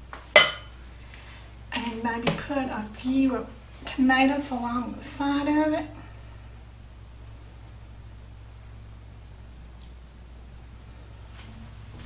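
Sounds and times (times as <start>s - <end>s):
dishware clinking: 0.4s - 0.7s.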